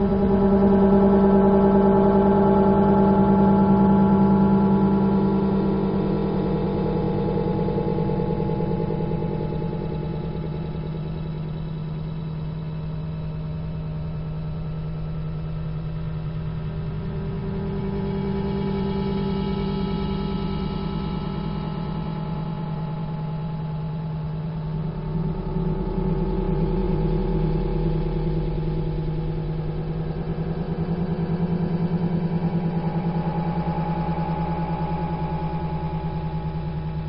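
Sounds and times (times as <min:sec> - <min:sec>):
fluttering low drone: 0:00.0 - 0:37.0.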